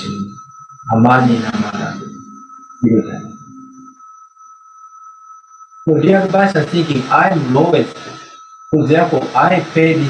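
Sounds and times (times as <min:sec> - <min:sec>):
high-pitched electronic tone: 0:00.0 - 0:10.0.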